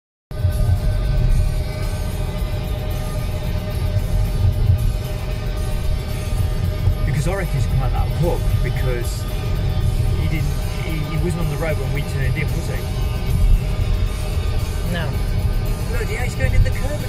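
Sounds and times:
car cabin engine and road rumble: 0.3s - 17.0s
music playing: 0.3s - 17.0s.

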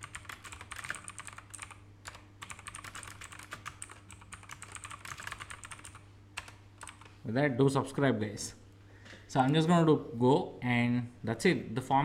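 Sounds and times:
typing on a computer keyboard: 0.0s - 7.1s.

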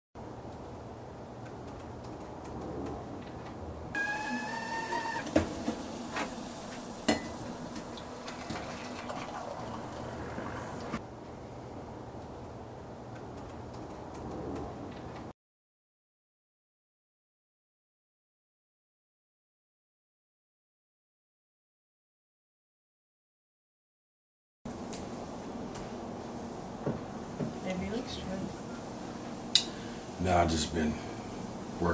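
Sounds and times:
kettle whistling: 4.0s - 11.0s
steam hissing: 4.0s - 11.0s.

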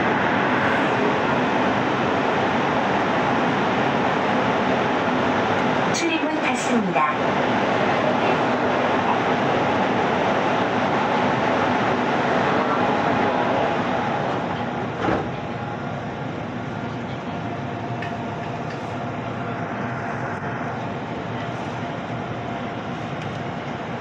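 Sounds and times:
train equipment hum and rumble: 0.0s - 24.0s
train clunk: 15.0s - 15.4s.

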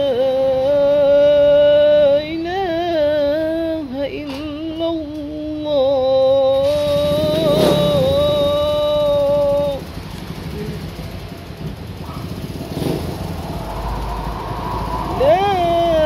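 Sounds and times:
man singing call to prayer: 0.0s - 9.8s
vehicle engine rumble: 0.0s - 16.0s.

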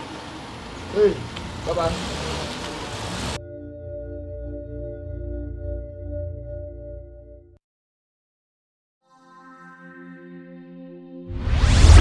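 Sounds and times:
engine and tyre rumble: 0.0s - 3.4s
ambient music ringing tones: 3.4s - 7.6s, 9.0s - 11.3s.

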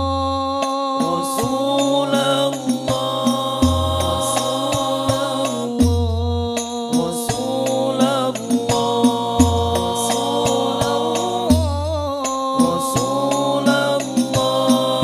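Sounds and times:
frame drums: 0.0s - 15.0s
men singing in unison: 0.0s - 15.0s
deep bass drum: 2.8s - 7.5s, 8.6s - 12.2s.

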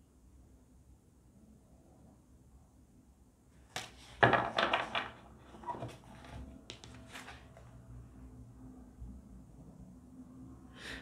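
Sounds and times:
cards slapping and rustling: 3.7s - 7.6s.

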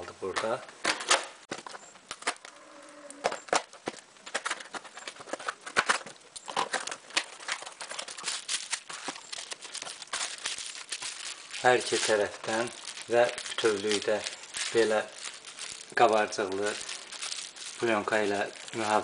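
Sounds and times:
bubble wrap crinkling: 3.4s - 19.0s.

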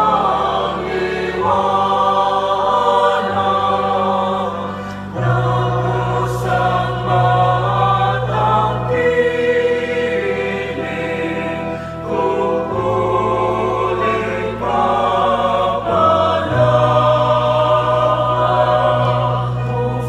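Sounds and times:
choir singing a hymn: 0.0s - 20.0s
held accompaniment chords: 0.0s - 20.0s.

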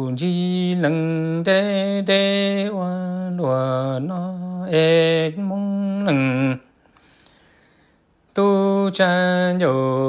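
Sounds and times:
person chanting sung poetry: 0.0s - 6.7s, 8.3s - 10.0s.

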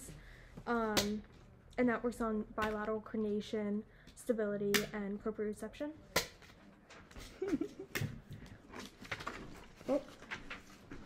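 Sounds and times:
paper pages being handled: 8.6s - 11.0s.

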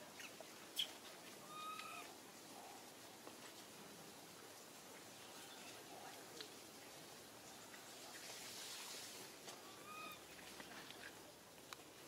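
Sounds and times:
outdoor background hiss: 0.0s - 12.0s
faint animal call: 0.8s - 2.9s, 5.2s - 6.4s, 9.6s - 10.3s.

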